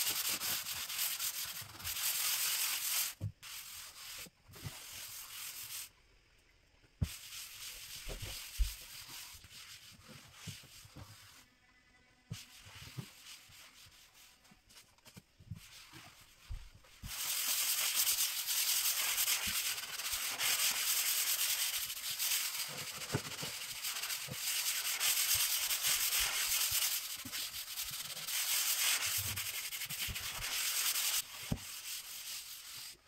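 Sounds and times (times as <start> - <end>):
hand scrubber scrubbing worktop: 0.0 - 5.9, 7.0 - 11.4, 15.6 - 33.0.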